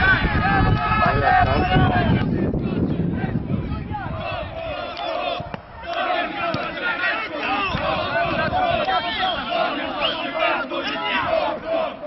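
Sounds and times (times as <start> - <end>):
spectators shouting together: 0.0 - 12.0.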